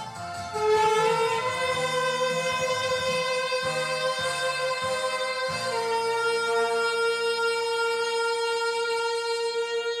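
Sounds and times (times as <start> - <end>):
saxophone ensemble sustained note: 0.0 - 10.0.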